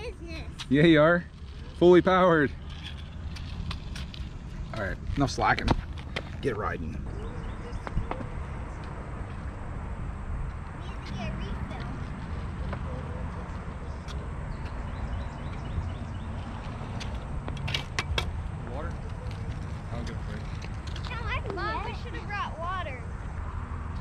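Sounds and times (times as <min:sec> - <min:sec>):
children's voices calling: 0:00.0 - 0:00.6, 0:10.8 - 0:13.5, 0:21.0 - 0:23.2.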